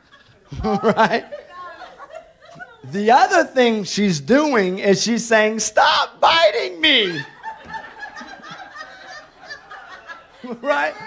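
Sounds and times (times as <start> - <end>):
audience laughing: 0.0 - 2.9, 6.4 - 11.0.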